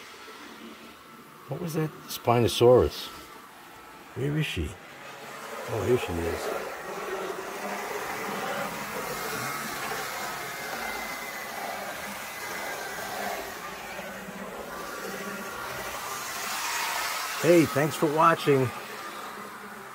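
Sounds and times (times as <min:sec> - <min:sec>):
model train motors whirring: 0:00.0 - 0:19.9.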